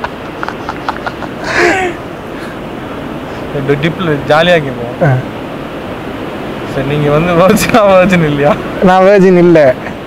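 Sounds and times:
men laughing: 0:00.0 - 0:03.5.

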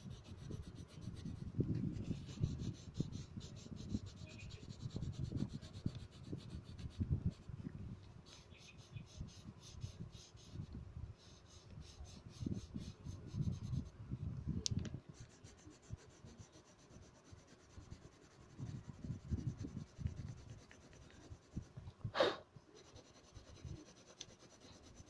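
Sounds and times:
pencil shading on paper: 0:00.0 - 0:07.4, 0:08.3 - 0:13.9, 0:15.1 - 0:21.7, 0:22.7 - 0:25.0.

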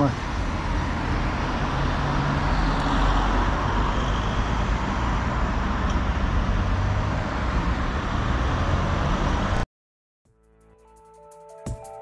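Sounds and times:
cars driving past: 0:00.0 - 0:09.6.

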